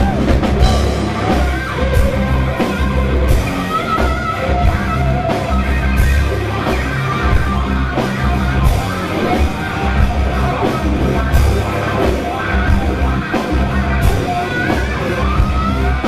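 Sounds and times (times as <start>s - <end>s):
bass guitar: 0.0s - 16.0s
distorted electric guitar: 0.0s - 16.0s
drums with cymbal crashes: 0.0s - 16.0s
heavy metal band playing live: 0.0s - 16.0s.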